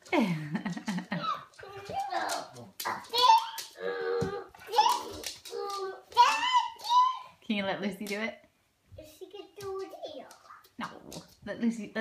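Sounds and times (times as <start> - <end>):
young children babbling and squealing: 1.2 - 7.4.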